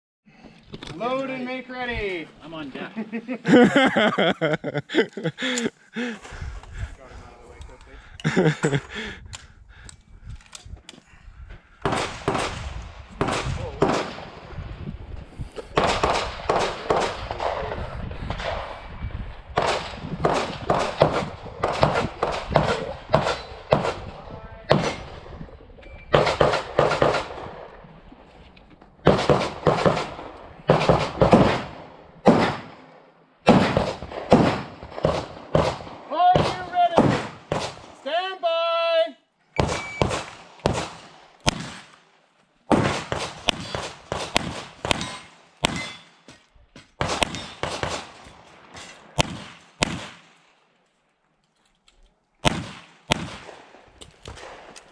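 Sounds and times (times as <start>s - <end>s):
handgun shots: 42.7s - 46.1s.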